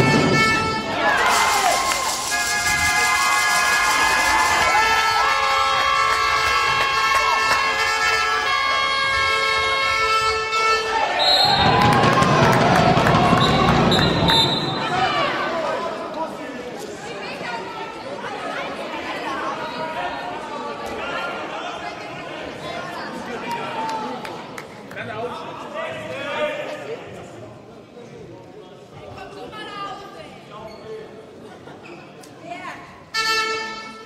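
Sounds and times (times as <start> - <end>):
short high whistle blasts: 11.2 - 11.8, 13.4 - 14.9.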